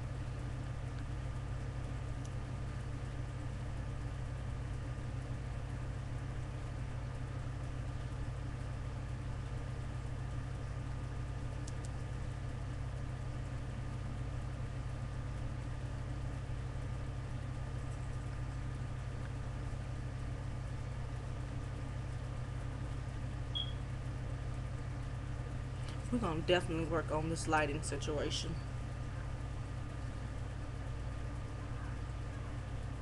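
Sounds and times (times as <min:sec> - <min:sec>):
low hum: 0:00.0 - 0:33.0.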